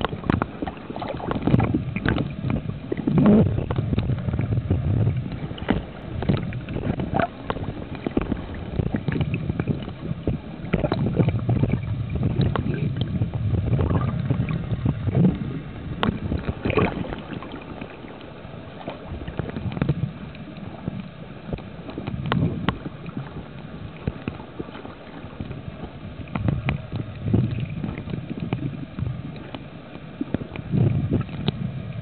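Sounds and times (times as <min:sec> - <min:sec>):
small clicks and crackles: 0:00.0 - 0:31.7
swirling underwater rumble: 0:00.0 - 0:32.0.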